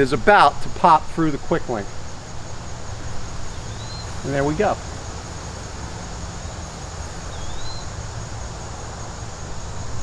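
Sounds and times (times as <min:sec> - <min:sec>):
high insect drone: 0:00.0 - 0:10.0
faint rising chirp: 0:02.4 - 0:10.0.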